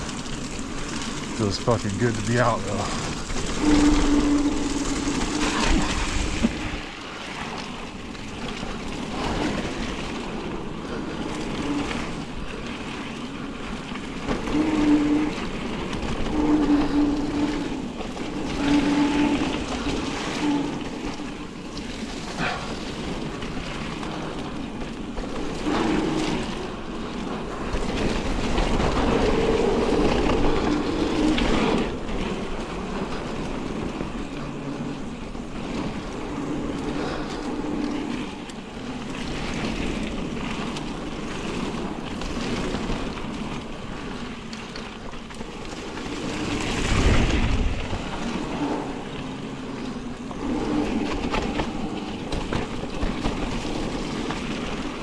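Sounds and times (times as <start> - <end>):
bike rattling over bumps: 0.0 - 55.0
wind on microphone: 0.0 - 55.0.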